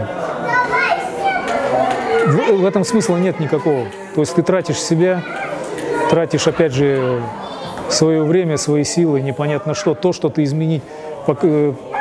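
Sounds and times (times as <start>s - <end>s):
people chattering in echoing hall: 0.0s - 12.0s.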